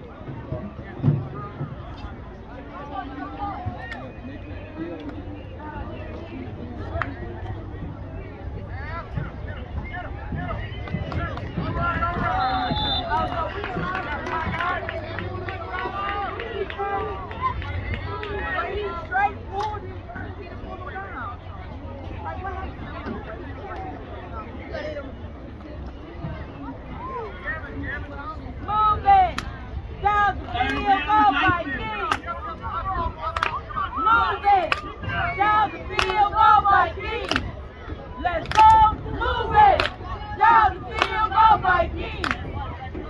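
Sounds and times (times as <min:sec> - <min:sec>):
crowd shouting and cheering: 0:00.0 - 0:43.0
low outdoor rumble: 0:00.0 - 0:43.0
voices talking: 0:00.0 - 0:43.0
high whistle: 0:12.2 - 0:13.3.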